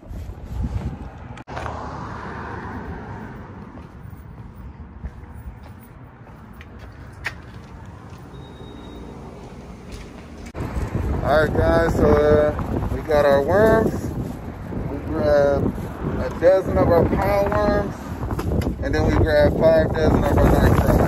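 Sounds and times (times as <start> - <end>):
rumbling handling noise: 9.8 - 21.0.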